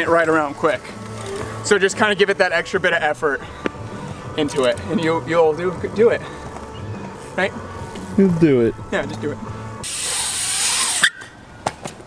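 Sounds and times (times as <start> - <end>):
bike tyres rolling on concrete: 0.0 - 12.0.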